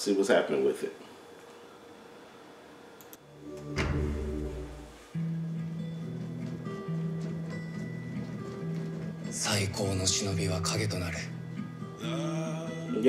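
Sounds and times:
held low music notes: 3.3 - 13.0
deep boom: 3.8 - 4.9.

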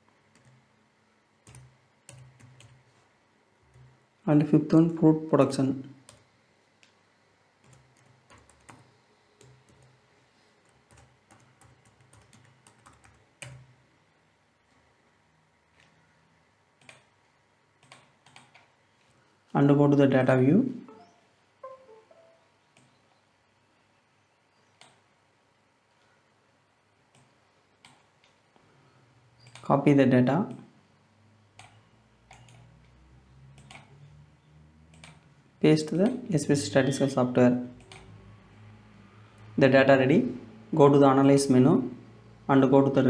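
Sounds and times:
keyboard typing: 0.3 - 0.7, 1.4 - 3.0, 3.6 - 4.0, 6.0 - 7.0, 7.6 - 10.0, 10.6 - 13.7, 16.8 - 17.2, 17.8 - 18.7, 20.9 - 23.0, 31.6 - 32.7, 33.5 - 34.0, 34.9 - 35.3
computer mouse clicks: 16.8 - 17.2, 17.8 - 18.7, 24.8 - 25.0, 27.1 - 28.4, 29.4 - 29.7, 31.6 - 34.0, 34.9 - 35.3, 37.8 - 38.2.

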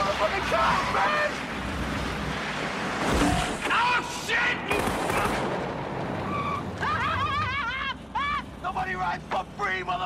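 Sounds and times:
car and street noise: 0.0 - 10.0
loud bangs: 3.0 - 6.8
gunshots: 4.6 - 5.8.

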